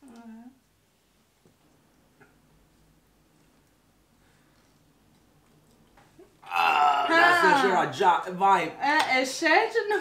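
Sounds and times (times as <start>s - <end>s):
person gagging: 6.4s - 7.8s.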